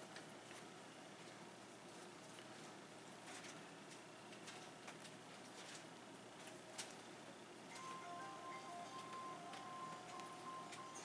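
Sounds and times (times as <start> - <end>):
soft background music: 7.7 - 11.0.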